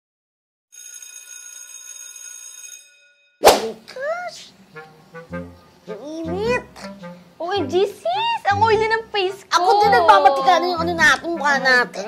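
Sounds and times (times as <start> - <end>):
bell-like ringing tones: 0.8 - 3.4.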